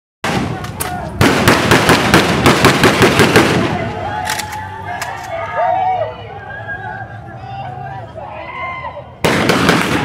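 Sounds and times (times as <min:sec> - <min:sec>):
rifle shots in rapid volley: 0:00.2 - 0:04.5, 0:09.2 - 0:10.0.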